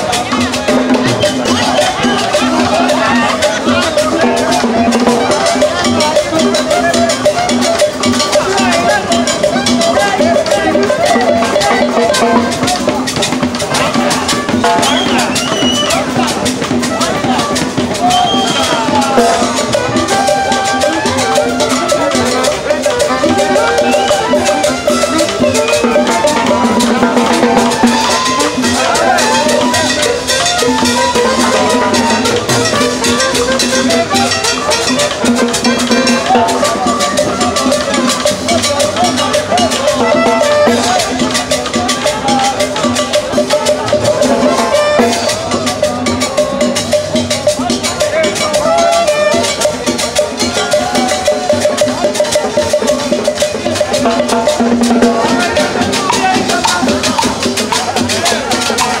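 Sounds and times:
hand drums and percussion: 0.0s - 59.0s
saxophone melody: 0.9s - 41.3s, 43.4s - 45.6s, 48.5s - 49.9s.

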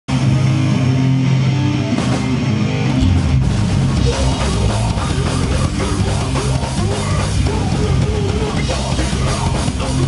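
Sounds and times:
electric guitar riff: 0.1s - 10.0s
heavy rock band playing: 0.1s - 10.0s.

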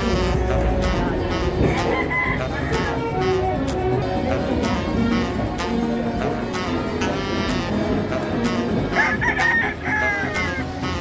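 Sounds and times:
background music: 0.0s - 11.0s
rooster crowing: 1.7s - 3.1s, 9.0s - 10.6s.

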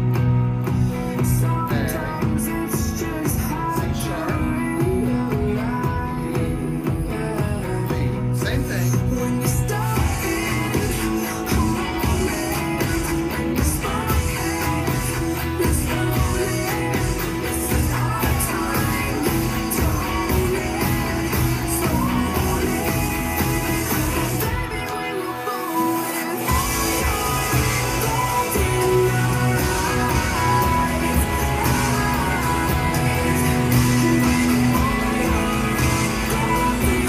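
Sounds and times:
electric guitar strumming chords: 0.0s - 37.0s
recorded pop worship song: 0.0s - 37.0s.

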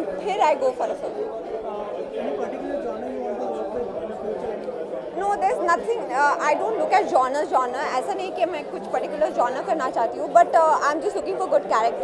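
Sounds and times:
chatter of several voices: 0.0s - 12.0s.

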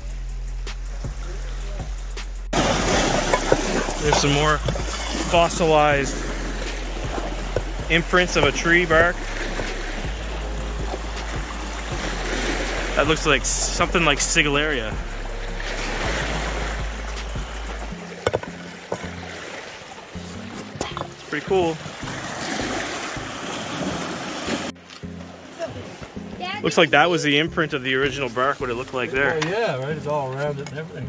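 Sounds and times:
soft background music: 0.0s - 31.0s
wind: 0.0s - 31.0s
surf on the shore: 2.6s - 30.2s.

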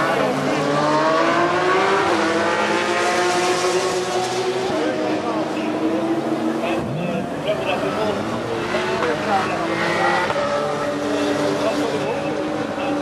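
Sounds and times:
race car engines droning: 0.0s - 13.0s
spectators talking: 0.0s - 13.0s.

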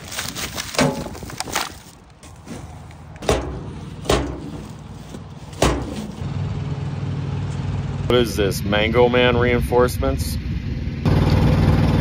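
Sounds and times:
metal bin lid banging shut: 3.2s - 4.7s, 5.5s - 6.2s.

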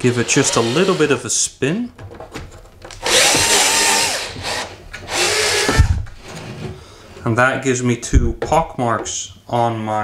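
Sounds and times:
cordless drill whine: 3.0s - 6.0s.

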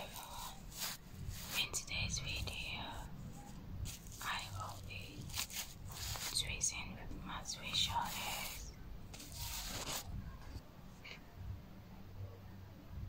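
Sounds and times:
person whispering: 0.0s - 10.0s.

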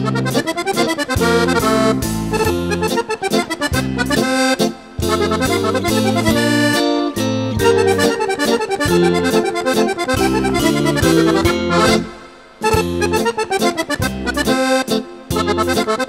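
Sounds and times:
backing band: 0.0s - 16.0s
piano accordion playing lively tune: 0.0s - 16.0s.

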